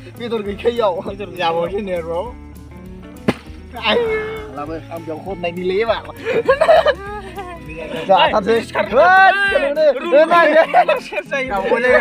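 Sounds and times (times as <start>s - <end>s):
bottle thud on grass: 3.2s - 3.8s.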